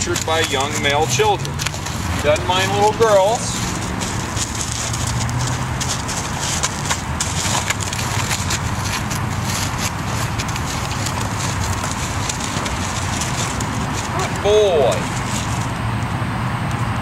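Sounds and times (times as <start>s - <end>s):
plastic bag rustling and crackling: 0.0s - 15.9s.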